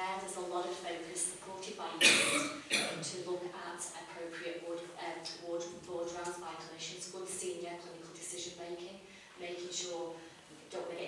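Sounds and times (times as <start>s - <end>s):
woman speaking: 0.0s - 11.0s
person coughing: 2.0s - 3.1s.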